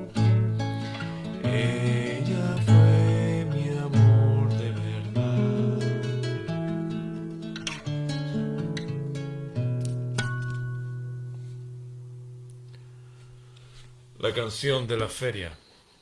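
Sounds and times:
acoustic guitar chords: 0.0 - 14.2
man singing softly: 1.4 - 6.5.

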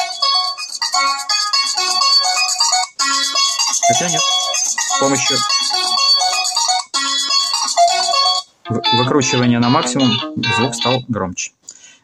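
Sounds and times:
ringtone melodies from phone speaker: 0.0 - 11.0.

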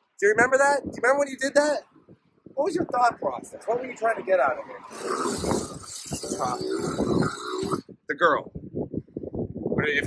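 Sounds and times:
man grunting and growling: 4.8 - 7.9.

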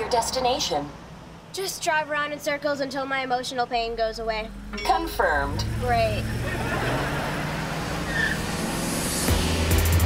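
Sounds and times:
car driving: 2.7 - 10.0.

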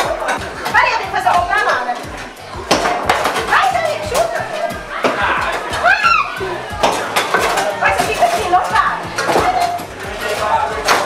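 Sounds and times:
foosball knocks and clacks: 0.0 - 5.9, 6.7 - 11.0.

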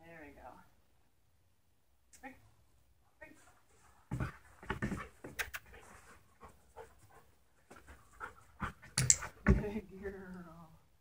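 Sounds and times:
dog panting: 3.8 - 9.5
sharp clicks: 9.0 - 9.3.

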